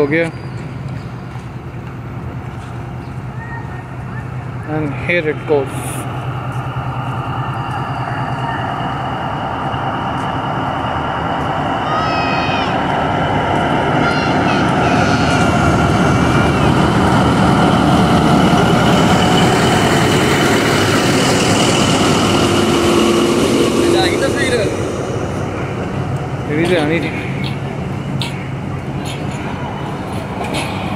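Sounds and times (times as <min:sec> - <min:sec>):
diesel locomotive engine running: 0:00.0 - 0:30.9
high squeals: 0:06.3 - 0:10.1.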